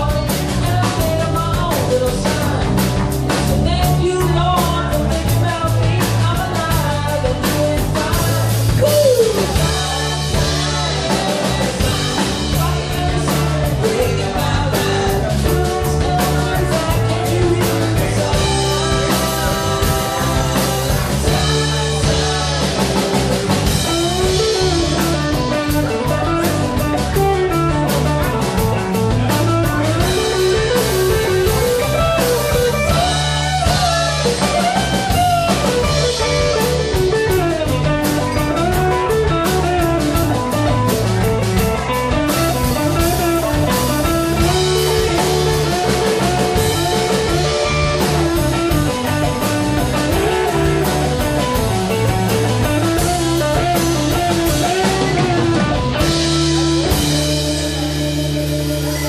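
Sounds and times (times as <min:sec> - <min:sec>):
blues-rock band playing: 0:00.0 - 0:59.0.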